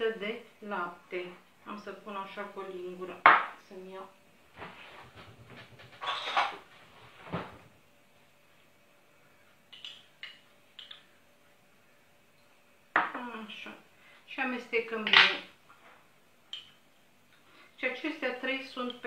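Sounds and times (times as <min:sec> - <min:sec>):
cutlery and dishes clattering: 0:05.6 - 0:06.6.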